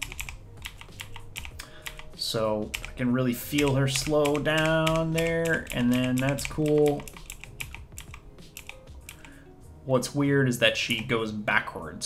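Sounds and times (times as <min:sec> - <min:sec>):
keyboard keys clicking: 0:00.0 - 0:09.4.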